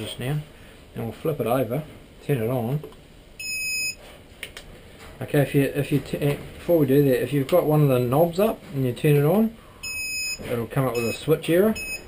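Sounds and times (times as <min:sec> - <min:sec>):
electronic beep: 0:09.8 - 0:10.4, 0:11.0 - 0:12.0.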